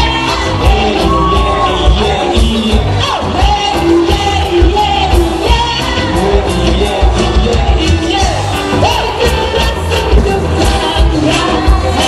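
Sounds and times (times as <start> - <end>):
live pop band: 0.0 - 12.0
people singing: 0.0 - 12.0.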